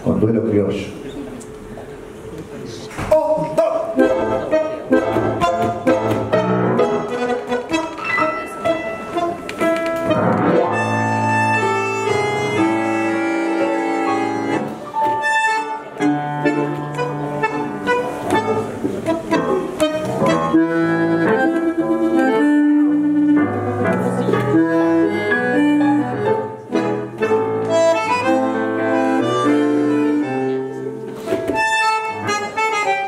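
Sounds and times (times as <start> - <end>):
piano: 3.1 - 33.0
bandoneon: 3.6 - 33.0.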